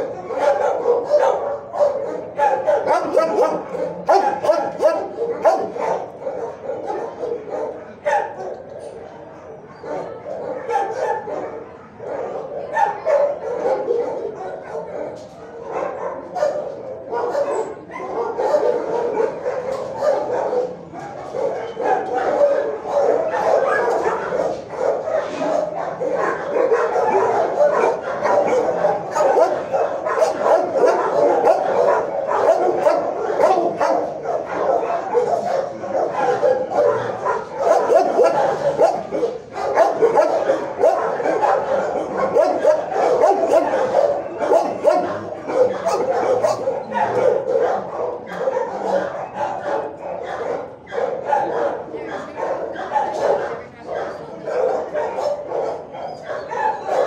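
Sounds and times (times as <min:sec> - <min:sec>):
many dogs barking and yipping: 0:00.0 - 0:57.0.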